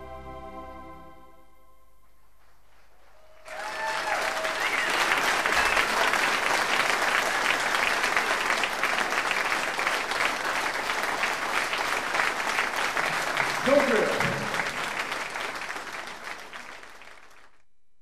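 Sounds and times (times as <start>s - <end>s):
audience applauding: 2.8s - 17.6s.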